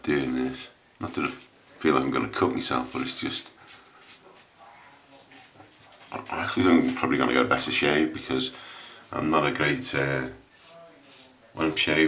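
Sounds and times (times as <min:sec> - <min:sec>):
razor scraping stubble: 0:02.7 - 0:04.5, 0:09.8 - 0:12.0.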